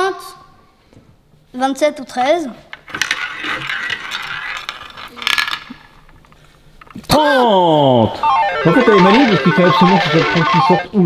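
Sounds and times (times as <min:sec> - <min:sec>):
ball rattling in roulette wheel: 0:02.9 - 0:07.0.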